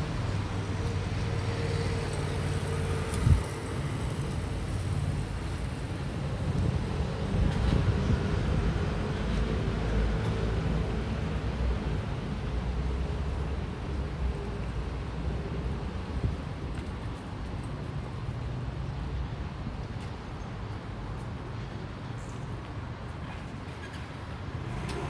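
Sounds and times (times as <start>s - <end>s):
road traffic rumble: 0.0s - 25.0s.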